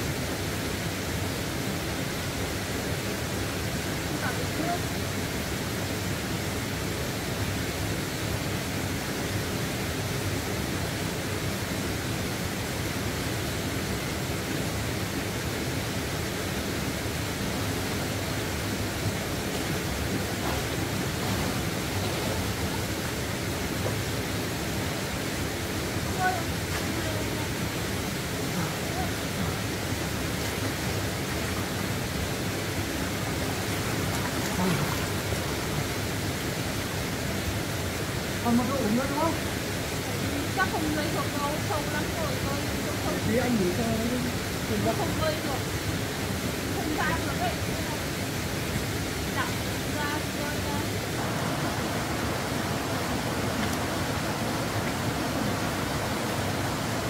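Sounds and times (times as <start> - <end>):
stream water over rocks: 0.0 - 57.0.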